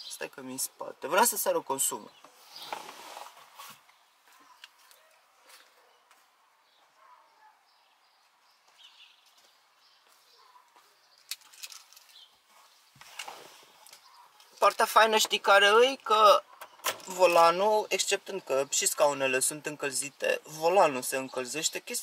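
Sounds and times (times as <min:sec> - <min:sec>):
faint rustling and handling: 0:02.3 - 0:05.9.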